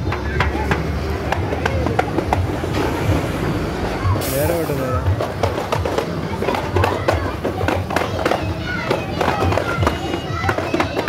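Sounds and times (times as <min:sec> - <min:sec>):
drum strokes in rhythm: 0:00.0 - 0:11.0
voices singing or chanting: 0:03.0 - 0:11.0.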